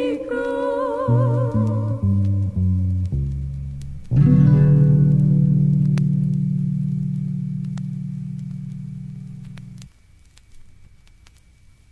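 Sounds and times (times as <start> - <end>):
vinyl record clicks: 0.0 - 11.9
guitar and bass chord ringing: 2.3 - 9.9.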